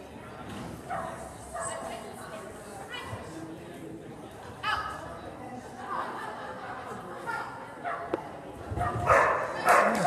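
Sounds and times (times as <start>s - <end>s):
dog barking: 8.8s - 10.0s.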